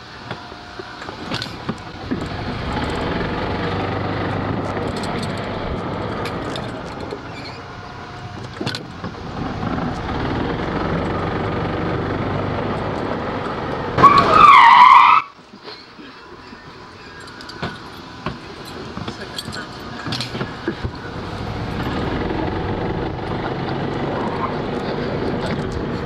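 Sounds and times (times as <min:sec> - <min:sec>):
golf cart motor and tyres rumbling: 0:00.0 - 0:26.0
high-pitched squeal: 0:13.9 - 0:15.4.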